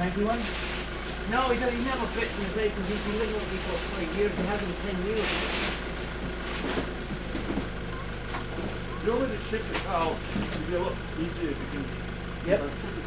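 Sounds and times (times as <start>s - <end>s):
people talking: 0.0s - 0.6s, 1.2s - 5.7s, 9.0s - 13.0s
steady low hum: 0.0s - 13.0s.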